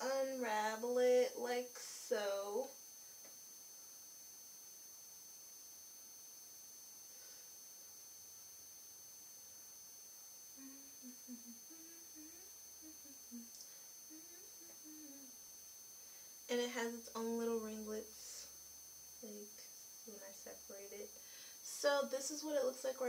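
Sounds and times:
faint steady hiss: 0.0s - 23.0s
woman humming: 10.6s - 15.4s, 19.2s - 21.0s.

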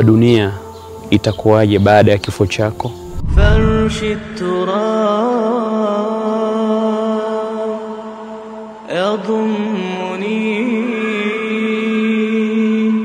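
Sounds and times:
solo vocal chanting: 0.0s - 13.0s.

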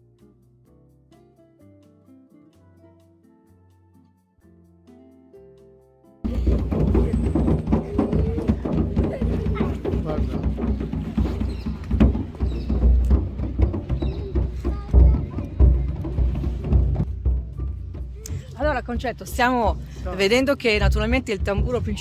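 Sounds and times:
voices chattering: 6.3s - 17.0s
bass drum booms: 6.3s - 22.0s.

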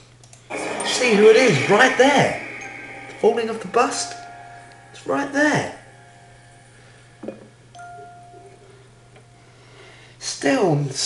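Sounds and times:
steady low hum: 0.0s - 10.2s
held high musical note: 0.5s - 9.6s.

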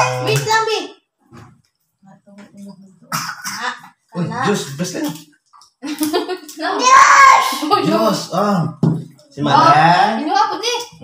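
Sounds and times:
loud high voice: 0.0s - 0.9s, 6.8s - 8.1s
adults and child talking: 0.0s - 1.0s, 6.4s - 11.0s.

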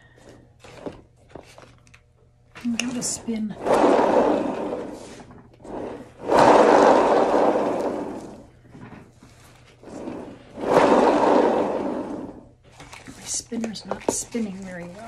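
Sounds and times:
paint spinner whirring: 2.6s - 15.0s.

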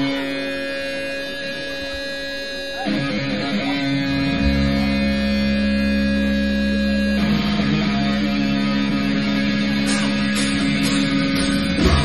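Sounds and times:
deep bass drone: 0.0s - 12.0s
distorted electric guitar chords: 0.0s - 12.0s.

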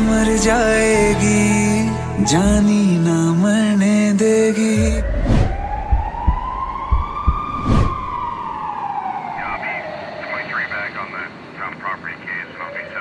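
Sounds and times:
sharp thuds: 4.8s - 8.2s
siren wailing: 4.8s - 11.0s.

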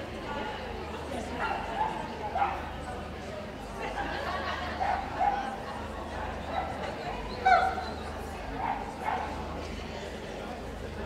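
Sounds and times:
people talking: 0.0s - 11.0s
dog barking: 1.8s - 2.6s.

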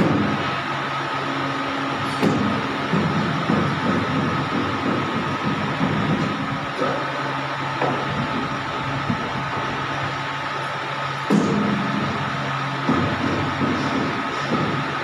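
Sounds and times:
pipe bending machine humming: 0.0s - 15.0s.

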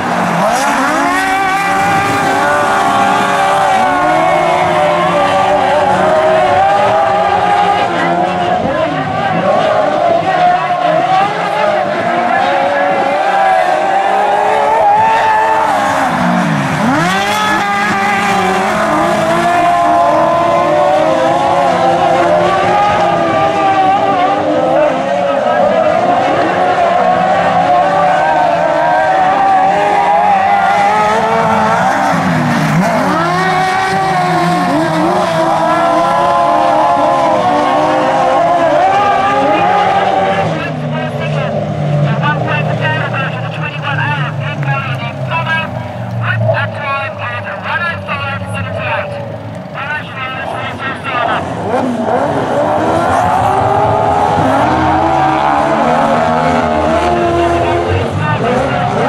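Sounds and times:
sidecar motorcycle engines revving: 0.0s - 59.0s.

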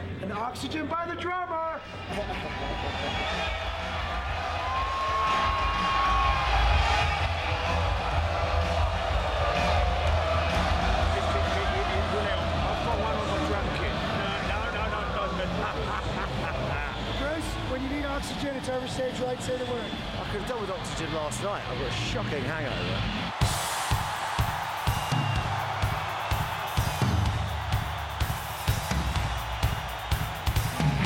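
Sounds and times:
muffled music with deep bass: 2.1s - 18.0s
people talking: 11.1s - 23.0s.

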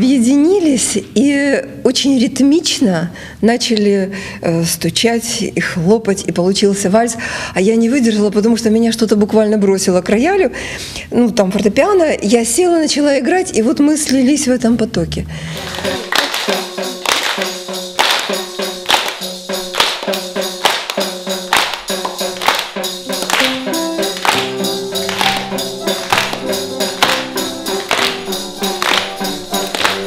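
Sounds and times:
children's percussion instruments: 15.5s - 30.0s
audience clapping: 15.6s - 30.0s
piano playing: 15.6s - 30.0s.

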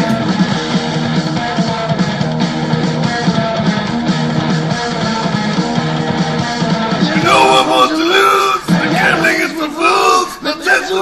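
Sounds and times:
instrumental hard rock music: 0.0s - 9.6s.

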